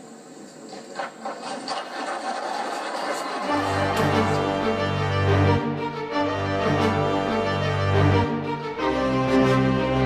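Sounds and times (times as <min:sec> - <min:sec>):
audience applause: 0:01.1 - 0:04.6.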